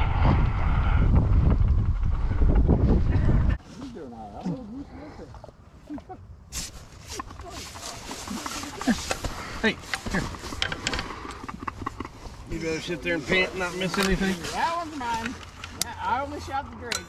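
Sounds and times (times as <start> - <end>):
fabric rustling: 6.6 - 10.6.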